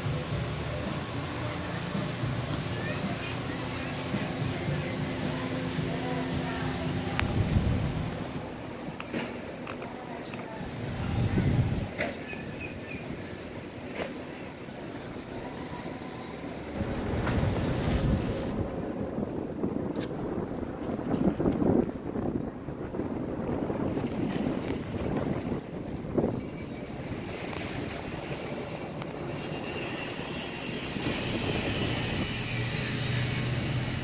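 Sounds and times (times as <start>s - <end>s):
low engine hum: 0.0s - 26.3s
wind rumbling on microphone: 0.0s - 34.0s.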